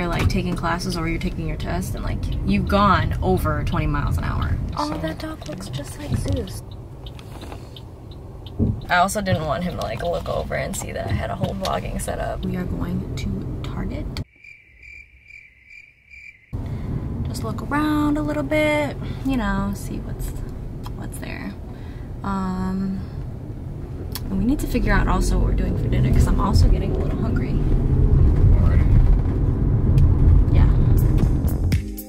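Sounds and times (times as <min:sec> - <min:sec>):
car cabin rumble: 0:00.0 - 0:14.2, 0:16.6 - 0:31.6
person speaking: 0:04.3 - 0:06.6
cricket trill: 0:14.3 - 0:16.6.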